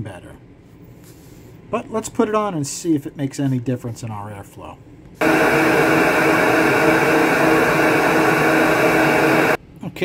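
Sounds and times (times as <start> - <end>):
flow bench motors running: 5.2 - 9.6.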